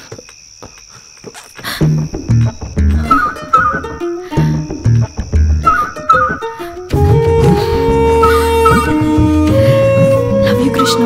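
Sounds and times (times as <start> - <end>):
crickets chirring: 0.0 - 11.0
low musical notes: 2.0 - 11.0.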